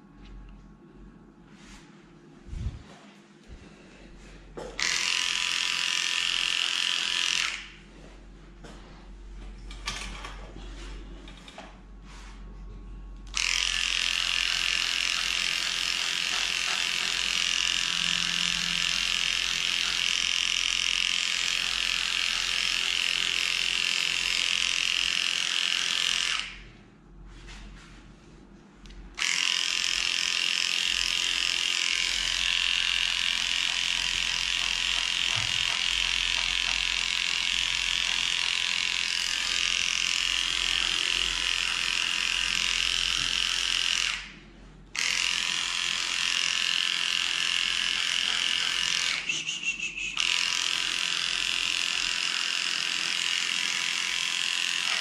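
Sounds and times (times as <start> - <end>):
electric clipper buzzing: 4.6 - 7.8, 13.2 - 26.7, 29.2 - 44.4, 45.0 - 55.0.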